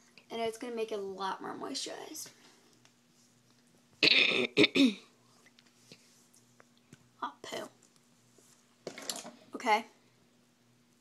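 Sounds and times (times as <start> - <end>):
woman coughing: 4.0 - 5.1.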